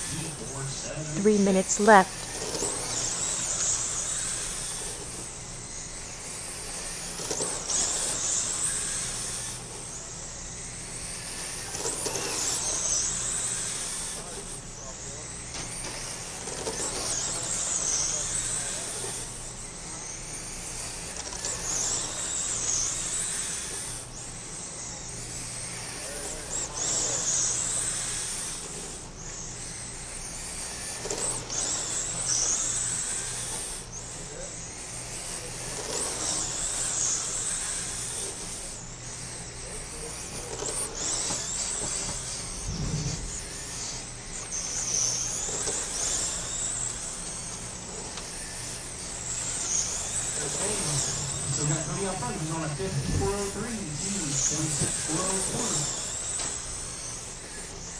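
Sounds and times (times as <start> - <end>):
model race car motors whining: 0.0 - 57.9.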